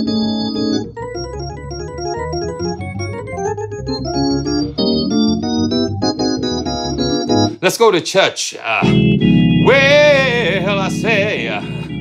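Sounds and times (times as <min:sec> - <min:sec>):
organ chords: 0:00.0 - 0:12.0.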